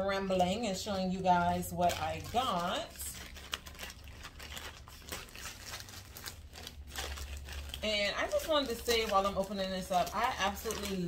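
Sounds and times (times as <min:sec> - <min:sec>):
plastic mailer bag crinkling: 0:00.0 - 0:11.0.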